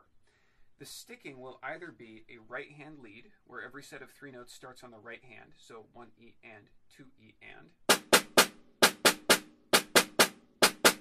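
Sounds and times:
snare drum strokes: 7.9 - 11.0.

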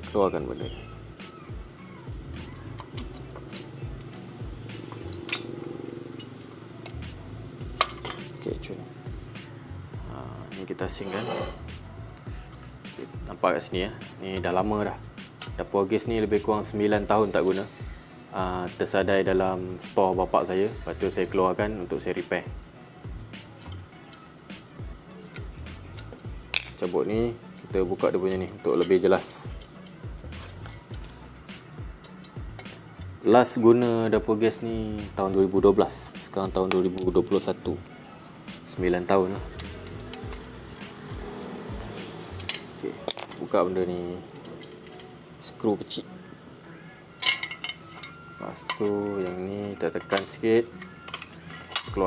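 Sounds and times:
background music: 0.0 - 52.0
metal clinks and handling noise: 7.8 - 8.4, 42.3 - 45.2, 47.2 - 52.0.

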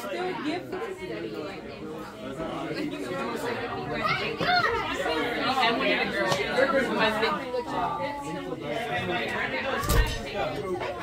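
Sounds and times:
overlapping party chatter: 0.0 - 11.0.

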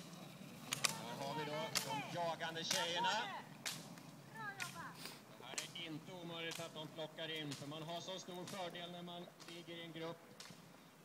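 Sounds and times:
ski pole tips clicking on asphalt: 0.0 - 10.9.

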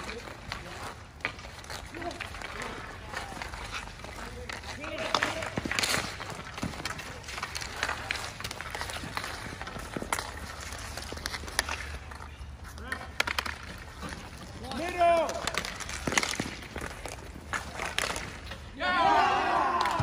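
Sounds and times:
hockey sticks clacking on asphalt: 0.0 - 20.0
players' voices: 0.0 - 20.0
loud shout: 18.8 - 20.0.

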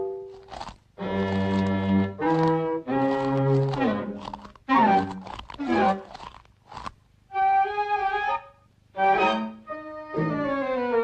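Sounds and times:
chipmunks crunching popcorn: 0.1 - 7.1
orchestral music with falling notes: 7.4 - 11.0.

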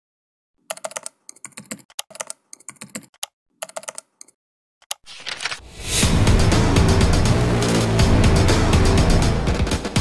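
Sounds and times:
keyboard typing: 0.6 - 5.6.

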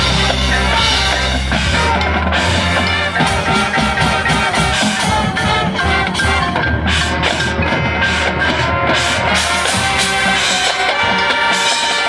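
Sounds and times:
drum and percussion strikes: 0.0 - 12.0
marching band playing: 0.0 - 12.0.

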